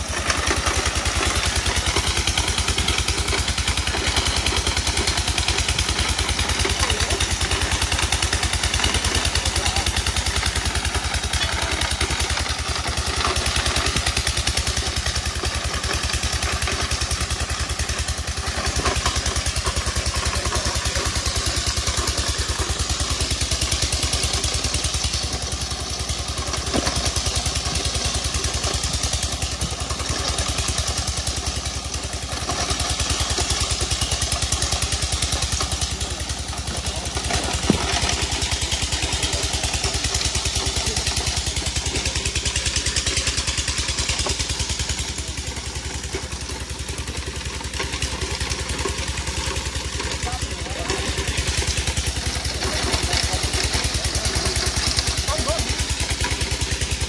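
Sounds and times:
stone-grinding machine engine running: 0.0s - 57.0s.

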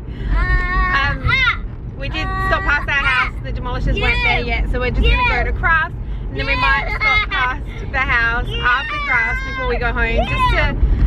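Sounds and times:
car driving rumble: 0.0s - 11.0s.

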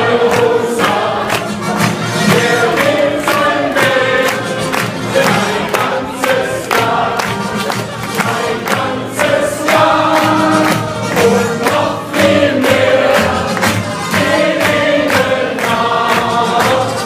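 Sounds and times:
hand-clapping: 0.0s - 17.0s
party music with group singing: 0.0s - 17.0s.

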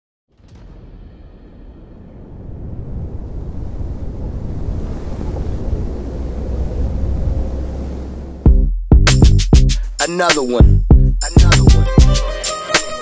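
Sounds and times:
deep rumble: 0.3s - 9.6s
rushing wind-like noise: 0.5s - 8.5s.

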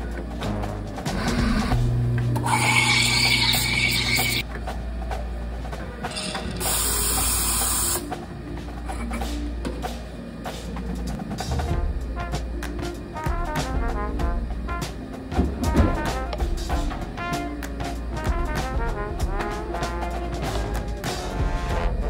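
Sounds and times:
background jazz: 0.0s - 22.0s
espresso machine pump buzz: 1.1s - 4.4s, 6.1s - 8.1s
high steam hiss: 6.3s - 8.1s.

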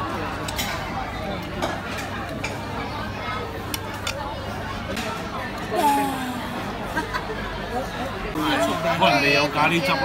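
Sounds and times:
chatter of diners: 0.0s - 10.0s
steady background noise: 0.0s - 10.0s.

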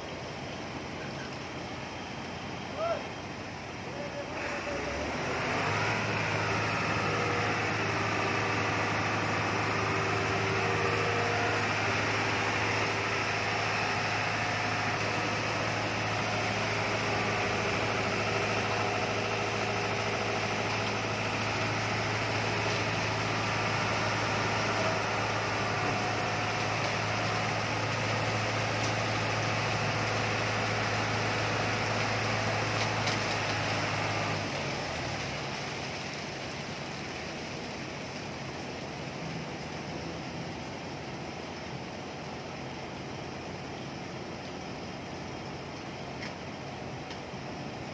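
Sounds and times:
machinery noise: 0.0s - 47.8s
engine humming: 0.0s - 47.9s.

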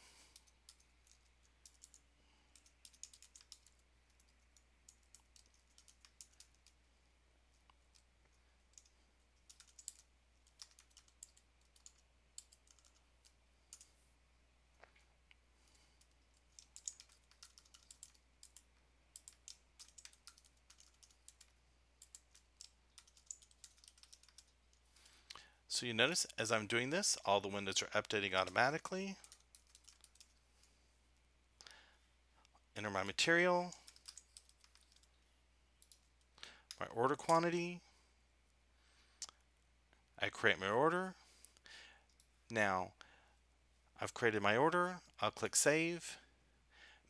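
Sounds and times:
faint typing on keyboard: 0.0s - 14.1s, 14.7s - 30.8s, 31.6s - 43.2s.

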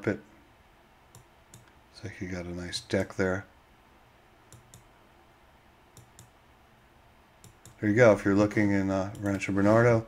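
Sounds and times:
computer mouse clicks: 1.1s - 1.8s, 4.5s - 4.9s, 5.9s - 6.3s, 7.4s - 7.8s, 9.1s - 9.5s.

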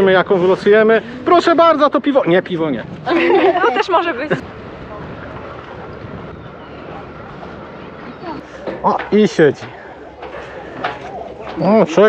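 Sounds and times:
outdoor harbour background noise: 0.0s - 12.0s
wind noise on microphone: 2.2s - 8.4s.

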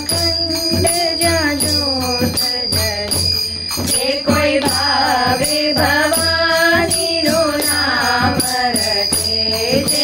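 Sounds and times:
hand drum beat: 0.0s - 10.0s
women singing devotional song: 0.0s - 10.0s.

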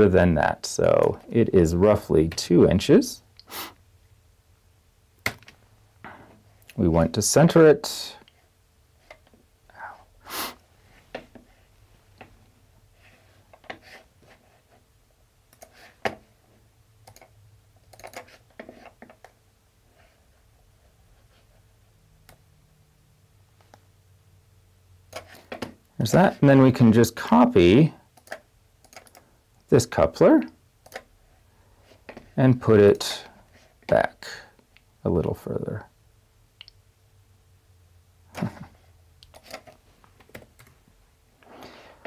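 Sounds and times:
computer mouse clicks: 15.5s - 15.8s, 17.0s - 18.4s, 28.2s - 29.3s, 30.8s - 31.1s, 39.2s - 40.8s
computer mouse click: 28.2s - 29.2s, 30.8s - 31.1s.

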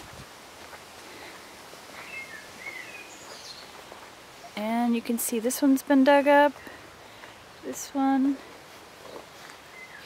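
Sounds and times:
outdoor background hiss: 0.0s - 10.0s
songbird chirps: 1.7s - 10.0s.

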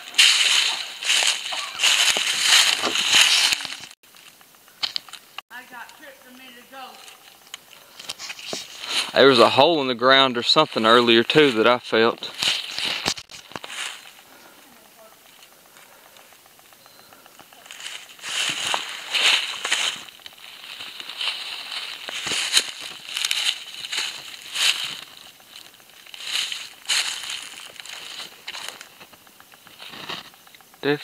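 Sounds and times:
footsteps crunching dry vegetation: 0.0s - 4.3s, 6.0s - 30.8s.

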